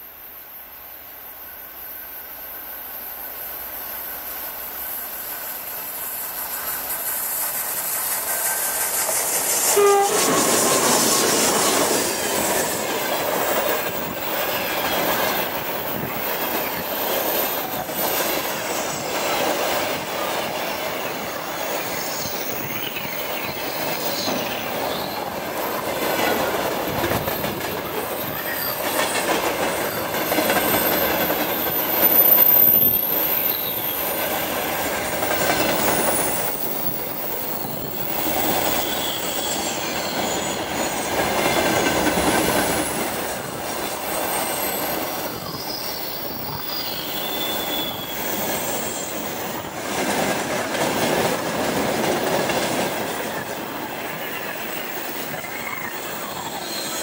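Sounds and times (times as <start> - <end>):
freight train wagons rolling past: 0.0 - 57.0
high wheel squeals: 9.6 - 19.0, 21.8 - 34.8, 35.5 - 49.7, 54.1 - 57.0.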